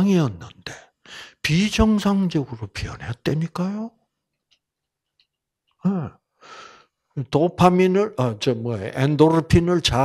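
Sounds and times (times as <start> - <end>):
man voicing uh: 0.0 - 0.8, 5.8 - 6.1
breathy sigh: 6.4 - 6.9.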